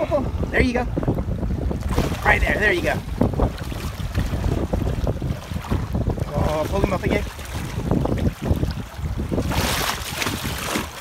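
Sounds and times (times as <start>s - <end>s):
wind rumble on microphone: 0.0s - 11.0s
water splashing: 1.0s - 11.0s.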